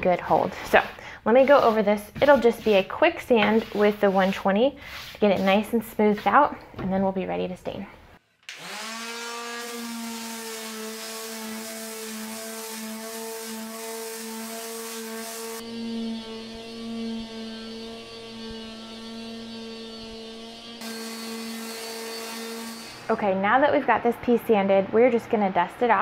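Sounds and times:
electric sander on wood: 8.5s - 23.1s.

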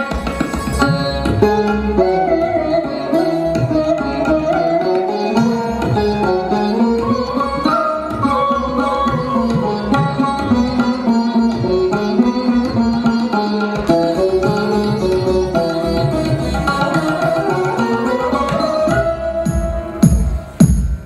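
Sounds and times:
string melody: 0.0s - 21.0s
drum strokes: 19.4s - 21.0s.

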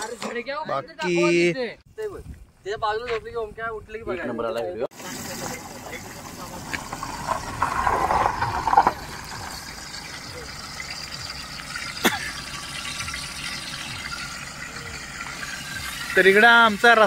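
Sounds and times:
vehicle driving past: 5.4s - 11.7s.

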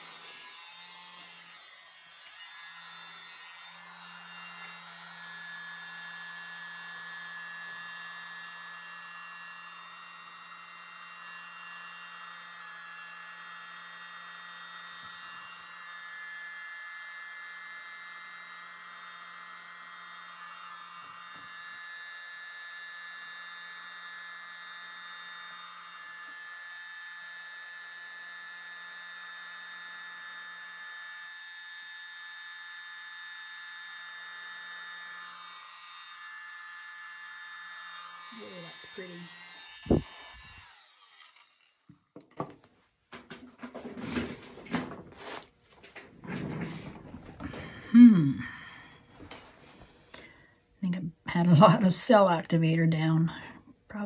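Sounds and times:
electric mini blower whining: 0.0s - 54.0s.

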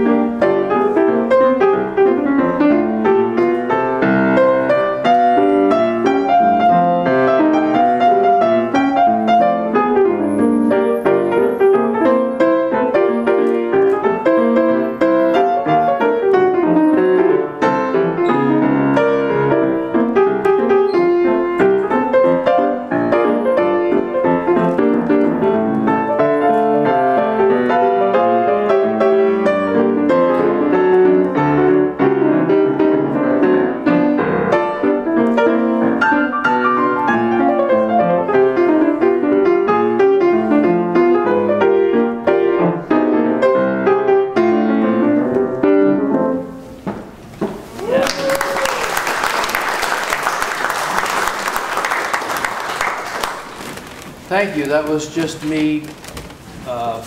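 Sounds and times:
jazz piano improvisation: 0.0s - 57.0s
audience applauding: 47.7s - 55.0s.

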